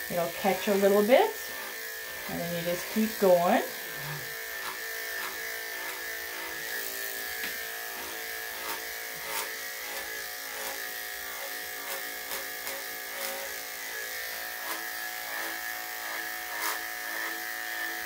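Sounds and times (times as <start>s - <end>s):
electric clippers humming: 0.0s - 18.0s.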